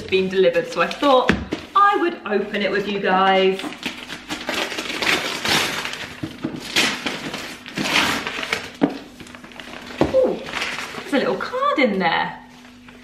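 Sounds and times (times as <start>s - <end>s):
cardboard crackling: 0.0s - 1.9s, 3.4s - 11.6s
cardboard ripping: 3.6s - 11.2s.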